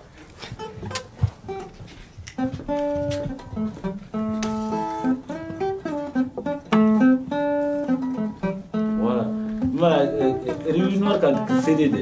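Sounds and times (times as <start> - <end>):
acoustic guitars playing blues: 0.0 - 12.0.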